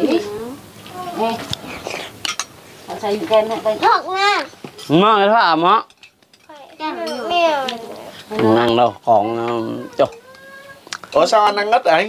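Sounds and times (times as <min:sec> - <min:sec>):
spoons clinking against bowls: 0:02.2 - 0:02.5, 0:05.8 - 0:07.5, 0:09.4 - 0:10.4, 0:11.0 - 0:11.9.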